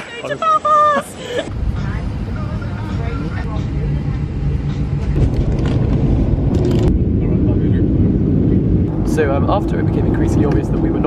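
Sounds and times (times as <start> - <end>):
jet engine rumble: 1.4 - 11.0.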